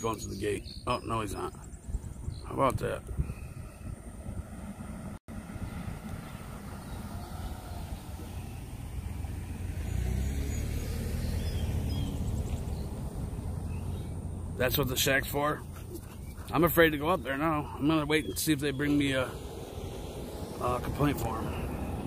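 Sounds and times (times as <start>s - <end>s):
outdoor background noise: 0.0s - 22.0s
car driving past: 4.2s - 14.9s, 18.5s - 22.0s.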